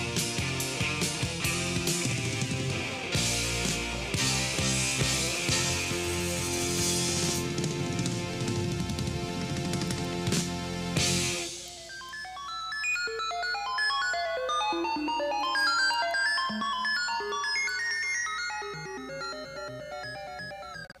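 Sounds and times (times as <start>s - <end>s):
rock band chord and cymbal: 0.0s - 11.8s
synthesizer bleeping notes: 11.8s - 21.0s.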